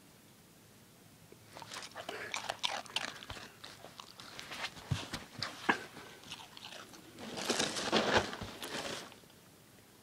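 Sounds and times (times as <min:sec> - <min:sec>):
dog crunching cereal: 0:01.5 - 0:09.2.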